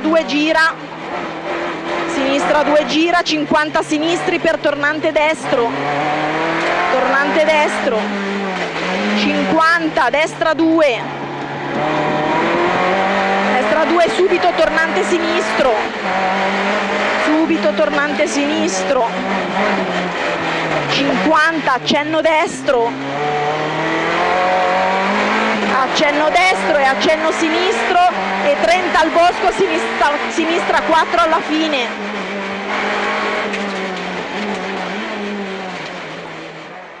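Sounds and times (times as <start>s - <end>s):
rally car engine running hard: 0.0s - 37.0s
road and tyre noise: 0.0s - 37.0s.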